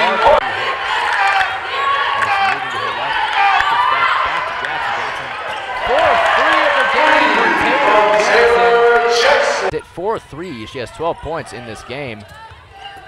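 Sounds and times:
voices in a hall: 0:00.0 - 0:13.0.

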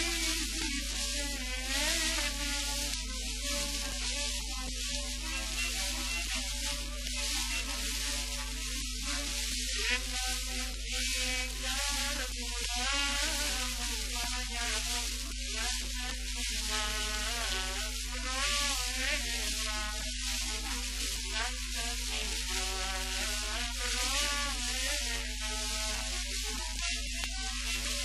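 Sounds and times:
old popular song recording: 0:00.0 - 0:28.0
steady low hum: 0:00.0 - 0:28.0
surface hiss: 0:00.0 - 0:28.0.

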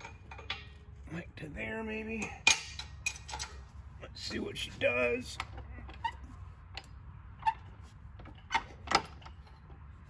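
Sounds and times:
metal clunks and clicks: 0:00.0 - 0:00.8, 0:02.2 - 0:03.7, 0:05.3 - 0:09.8.

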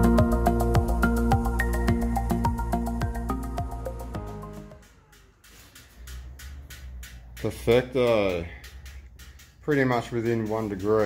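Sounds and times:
regular engine ticking: 0:04.6 - 0:11.0.

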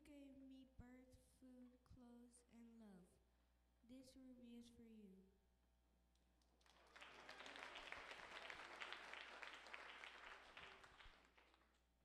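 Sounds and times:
crowd applauding: 0:06.6 - 0:11.7.

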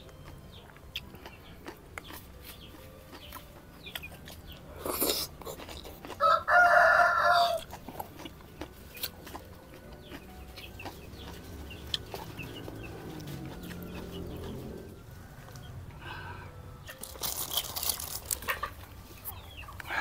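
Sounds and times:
quiet eating sounds: 0:00.0 - 0:20.0.

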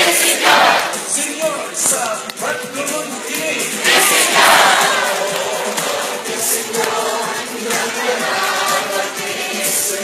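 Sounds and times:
crowd shouting and cheering: 0:00.0 - 0:10.0
loud music: 0:00.0 - 0:10.0.

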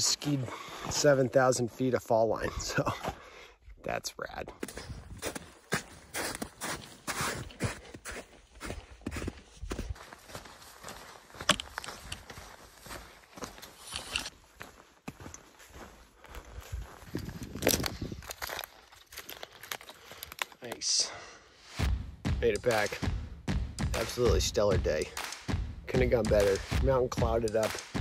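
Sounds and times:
footsteps on dirt path: 0:00.0 - 0:03.4, 0:04.4 - 0:20.8.

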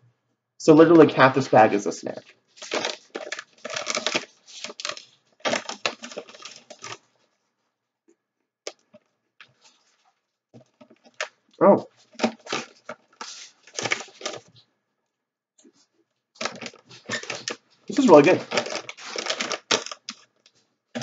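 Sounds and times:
crisps being chewed: 0:02.6 - 0:07.0, 0:16.4 - 0:20.3
snack bag crackling: 0:02.6 - 0:07.0, 0:12.2 - 0:14.5, 0:16.4 - 0:20.3
brief vocal sound: 0:11.6 - 0:11.9.

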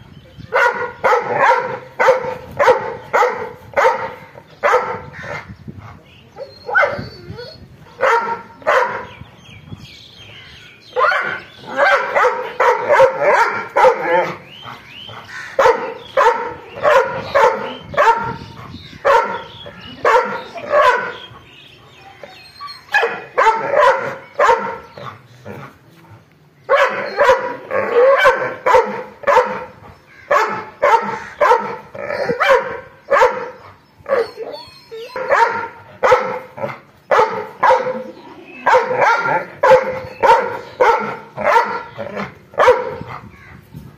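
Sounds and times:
dog barking angrily: 0:00.6 - 0:05.5, 0:08.0 - 0:09.2, 0:11.0 - 0:21.5, 0:22.9 - 0:25.7, 0:26.7 - 0:34.3, 0:35.1 - 0:43.2.

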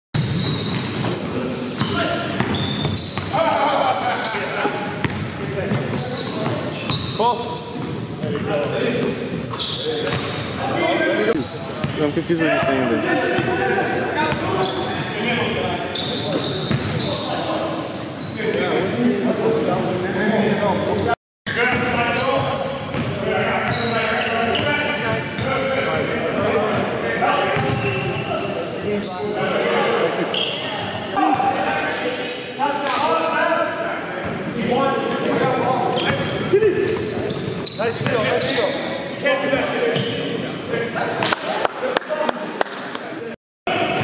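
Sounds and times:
sneakers squeaking: 0:00.2 - 0:18.7, 0:19.8 - 0:32.0, 0:34.2 - 0:39.3, 0:39.9 - 0:40.4, 0:43.1 - 0:44.0
players' voices: 0:01.0 - 0:44.0.

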